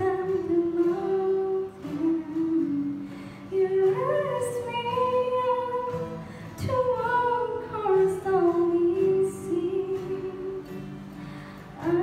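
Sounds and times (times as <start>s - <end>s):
strummed acoustic guitars: 0.0s - 12.0s
woman singing a slow ballad: 0.0s - 12.0s.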